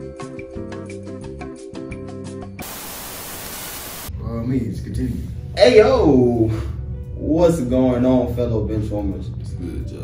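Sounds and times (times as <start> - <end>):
tv static hiss: 2.6 - 4.1.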